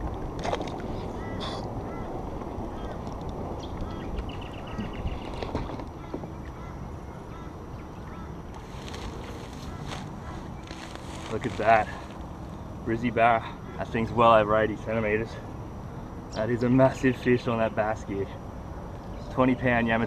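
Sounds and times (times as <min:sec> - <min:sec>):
birds calling: 0:00.8 - 0:19.8.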